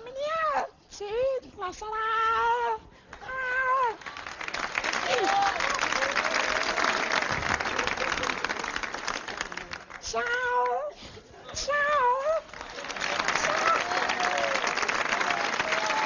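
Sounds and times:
audience applause: 4.0s - 10.0s, 12.4s - 16.0s.

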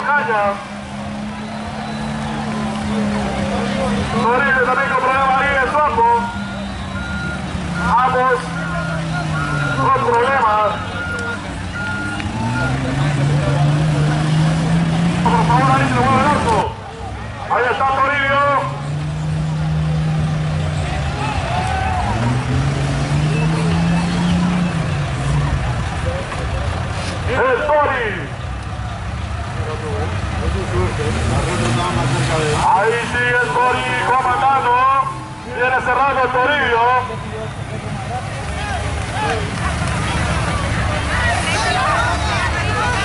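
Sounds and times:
voices: 0.0s - 43.0s
engine revving hard: 11.0s - 16.7s, 18.2s - 25.9s, 30.4s - 34.6s.

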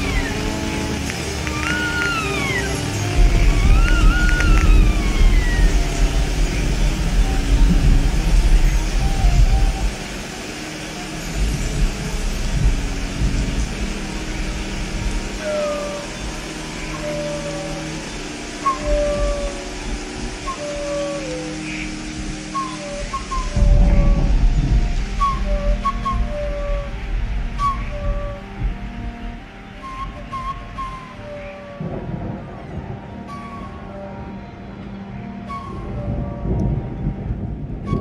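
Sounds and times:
deep low swell: 0.0s - 38.0s
held string notes: 0.0s - 38.0s
high whistle-like melody: 0.0s - 38.0s.

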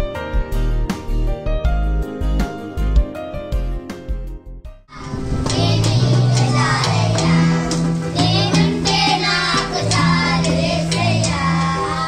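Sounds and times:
electronic keyboard accompaniment: 0.0s - 12.0s
children singing: 4.9s - 12.0s.

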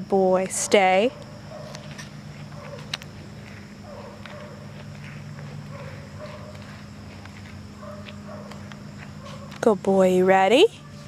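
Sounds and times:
low steady hum: 0.0s - 11.0s
footsteps on grass: 1.4s - 9.7s.

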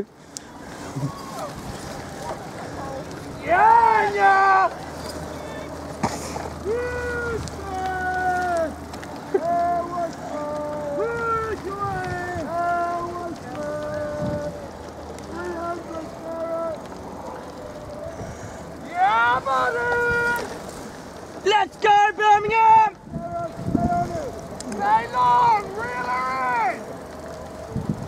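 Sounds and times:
supporters shouting encouragement: 0.9s - 5.8s, 6.5s - 20.6s, 21.4s - 26.9s.

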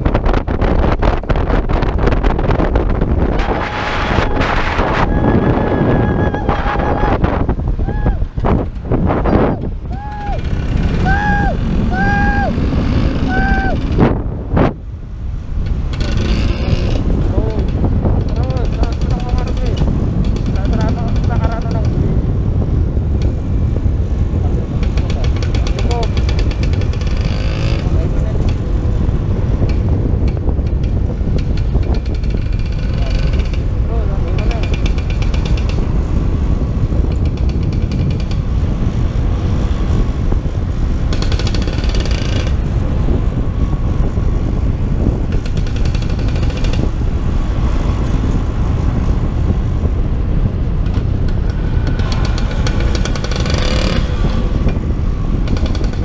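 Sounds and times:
wind buffeting microphone: 0.0s - 56.0s
scooter engine running: 8.2s - 14.1s, 45.2s - 49.0s, 50.4s - 56.0s.

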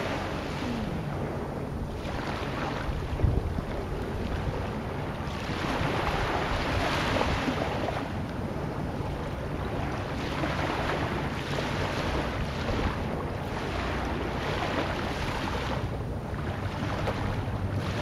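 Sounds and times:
sea waves surf: 0.0s - 18.0s
wind: 0.0s - 18.0s.

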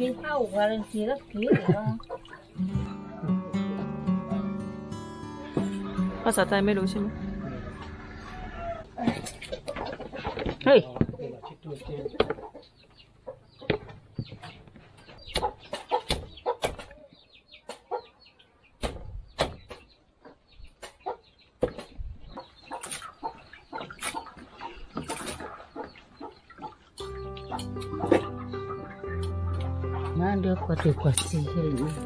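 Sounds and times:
background music: 0.0s - 9.9s, 27.0s - 32.0s.

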